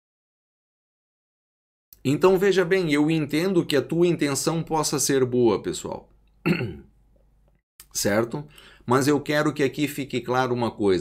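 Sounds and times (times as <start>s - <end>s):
man clearing throat: 6.4s - 6.9s.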